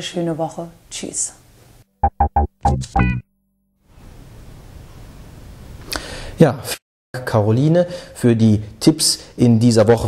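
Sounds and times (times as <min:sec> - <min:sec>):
microphone room hiss: 0:00.0 - 0:01.9, 0:03.8 - 0:10.0.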